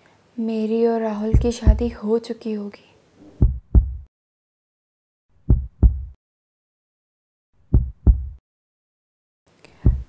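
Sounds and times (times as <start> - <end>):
heartbeat thumps: 1.3 - 2.0, 3.3 - 4.1, 5.4 - 6.2, 7.7 - 8.4.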